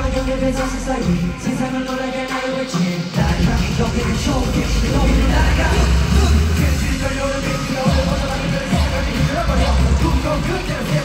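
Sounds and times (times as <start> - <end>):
heavy bass beat: 0.0 - 11.0
live pop concert music: 0.0 - 11.0.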